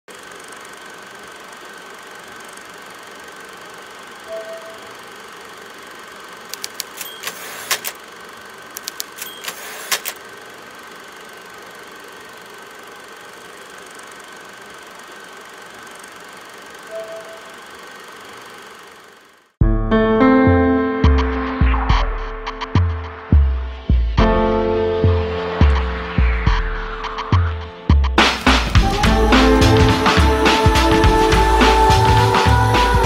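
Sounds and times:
machine whirring with hiss: 0:00.1 - 0:08.2, 0:08.8 - 0:19.2
short tone: 0:04.2 - 0:05.0, 0:16.9 - 0:17.7
faint high whine: 0:04.2 - 0:05.2, 0:16.7 - 0:18.3
rapid sharp clicks: 0:06.5 - 0:08.0, 0:08.7 - 0:10.2.

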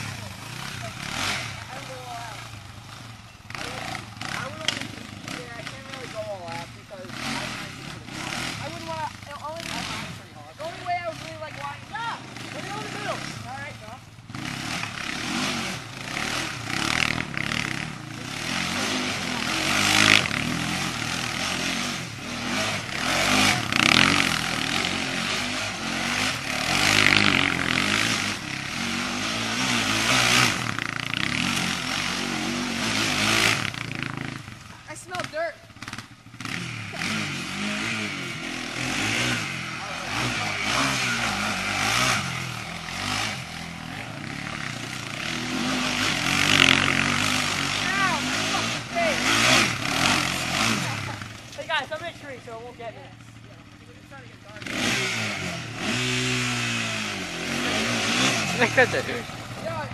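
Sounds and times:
quad bike engine revving: 0:00.0 - 0:59.9.

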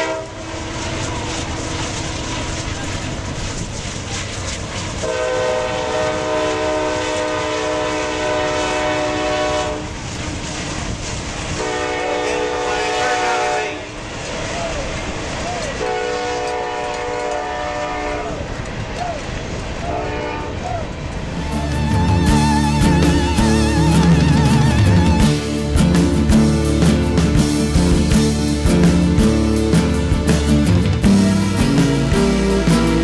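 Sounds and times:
loud horn chord blasts: 0:00.0 - 0:01.8, 0:05.0 - 0:09.9, 0:11.6 - 0:14.0, 0:15.8 - 0:18.4.

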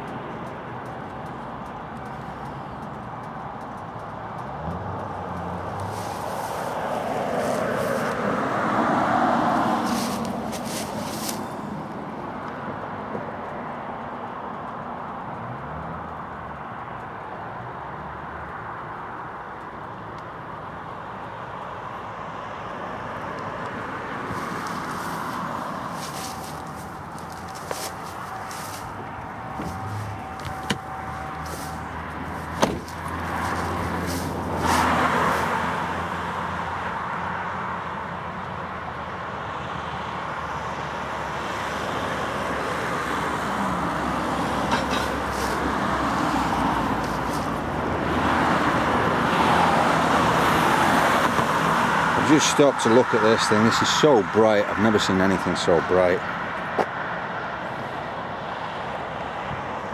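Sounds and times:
low engine hum: 0:00.0 - 0:13.2, 0:23.0 - 0:36.8, 0:41.7 - 0:49.0
road traffic passing: 0:00.0 - 0:59.9
sharp knocks: 0:32.5 - 0:33.0.

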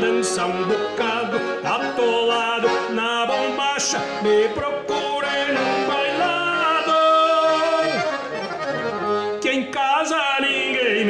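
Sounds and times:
piano accordion dance music: 0:00.0 - 0:11.0.

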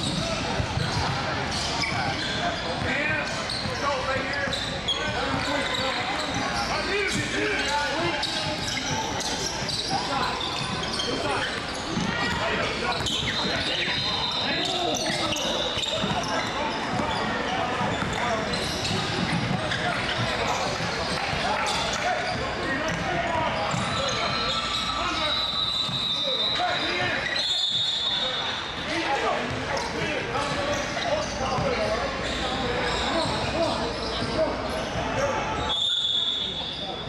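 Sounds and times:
overlapping chatter: 0:00.0 - 0:37.0.

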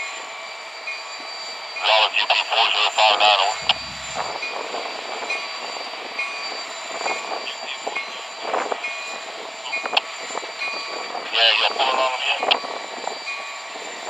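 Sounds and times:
diesel locomotive engine humming: 0:01.8 - 0:06.2.

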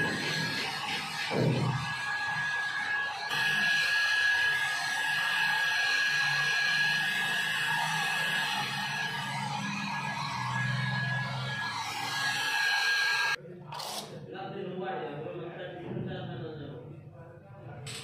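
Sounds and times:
hair dryer running: 0:00.0 - 0:13.4.

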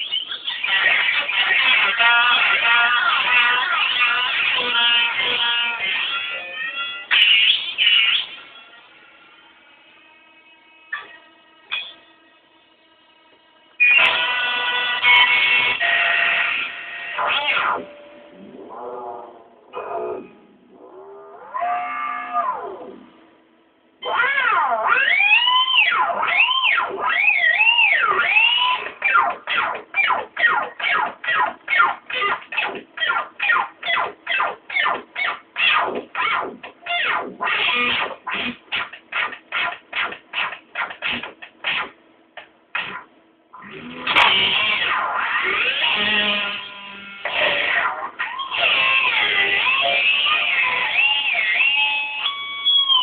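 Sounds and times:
electric guitar note bending: 0:00.0 - 0:23.4, 0:24.0 - 0:53.0
pitch-bending electric guitar note: 0:13.8 - 0:23.2, 0:43.6 - 0:53.0.

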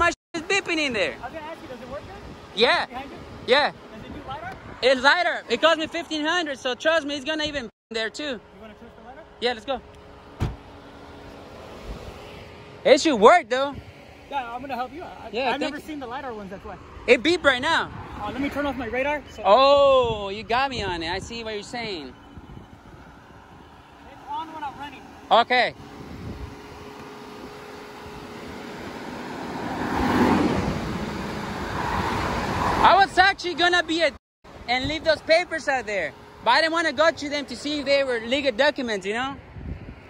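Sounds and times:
wind and road noise hiss: 0:00.4 - 0:06.8, 0:08.5 - 0:40.0
car passing on highway: 0:10.0 - 0:19.7, 0:22.7 - 0:40.0
car door shutting: 0:10.3 - 0:10.7.

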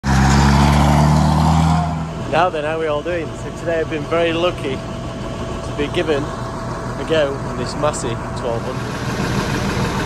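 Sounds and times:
tractor diesel engine driving by: 0:00.0 - 0:10.0.

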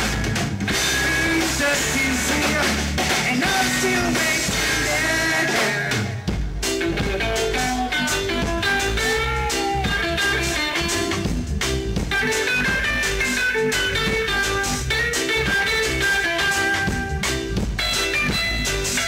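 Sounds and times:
electric guitar lead notes: 0:00.0 - 0:19.0
reggae band playing: 0:00.0 - 0:19.0.

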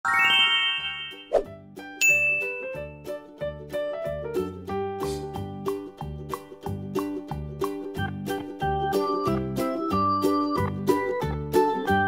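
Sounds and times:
shimmering chime: 0:00.1 - 0:01.3
light background music: 0:00.1 - 0:12.0
sharp ding: 0:02.0 - 0:02.8.

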